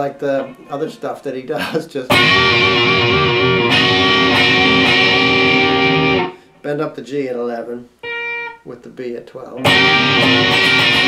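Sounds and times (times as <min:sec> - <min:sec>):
electric guitar chord ringing: 0:02.1 - 0:06.5, 0:08.0 - 0:08.6, 0:09.6 - 0:11.0.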